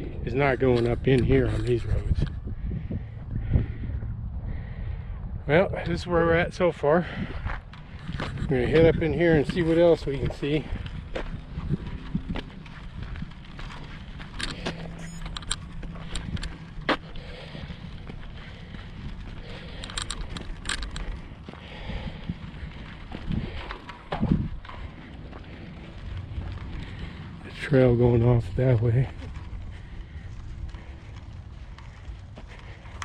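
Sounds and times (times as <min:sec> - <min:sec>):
wind rumble on microphone: 0:00.0 - 0:33.0
footsteps on a dirt trail: 0:00.1 - 0:33.0.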